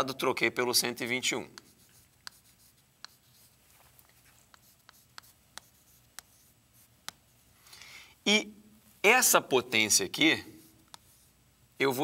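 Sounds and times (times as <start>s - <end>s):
chalk tapping on board: 1.5s - 7.4s, 10.6s - 11.3s
chalk scratching on chalkboard: 1.5s - 7.5s, 10.4s - 11.4s.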